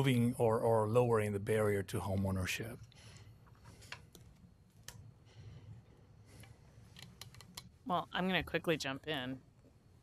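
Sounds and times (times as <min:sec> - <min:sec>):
man talking: 0:00.0 - 0:02.9
low room hum: 0:00.0 - 0:10.0.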